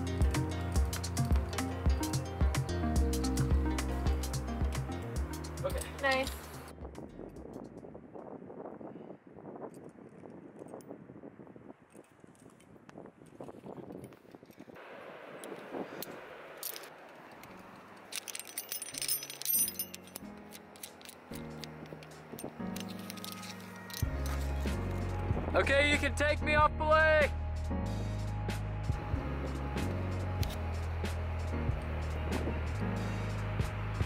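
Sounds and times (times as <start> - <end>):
background music with bass line: 0.0 - 7.8, 21.6 - 34.0
carabiners clinking and rattling: 15.4 - 25.0.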